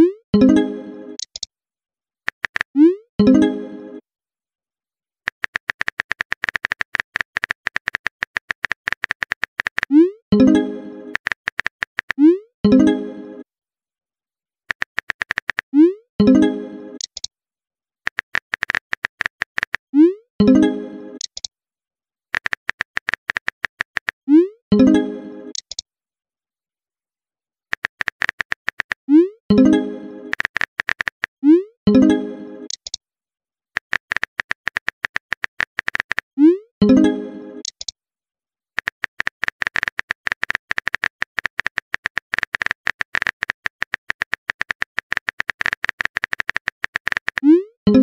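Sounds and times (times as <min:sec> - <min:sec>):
phone keyboard clicks: 0:02.3 - 0:02.8, 0:05.3 - 0:09.9, 0:11.1 - 0:12.2, 0:14.7 - 0:15.7, 0:17.0 - 0:17.3, 0:18.1 - 0:19.9, 0:22.4 - 0:24.2, 0:27.7 - 0:29.0, 0:30.3 - 0:31.4, 0:33.8 - 0:36.3, 0:37.6 - 0:37.9, 0:38.8 - 0:47.5.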